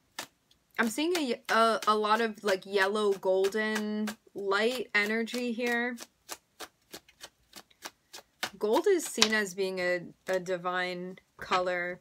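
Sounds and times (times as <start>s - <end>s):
cards being shuffled: 5.3s - 9.4s.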